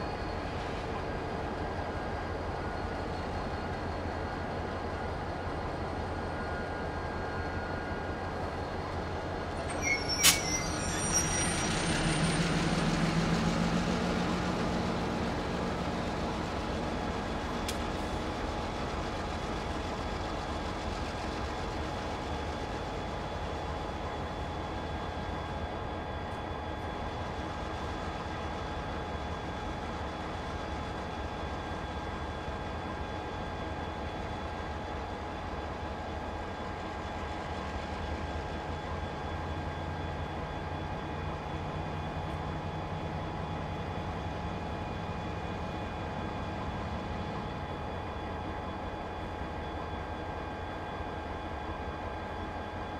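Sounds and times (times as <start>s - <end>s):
diesel locomotive rumbling: 0.0s - 52.9s
whining tones: 9.5s - 18.2s.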